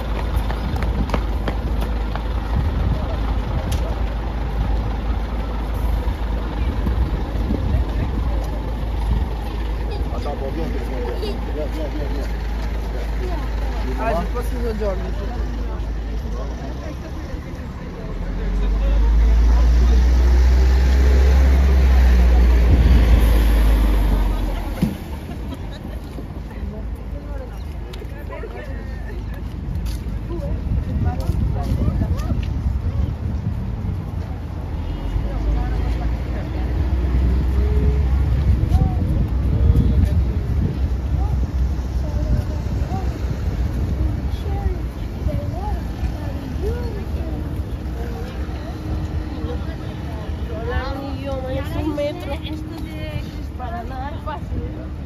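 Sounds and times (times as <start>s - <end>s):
bus engine idling: 0.0s - 55.0s
people talking: 0.5s - 55.0s.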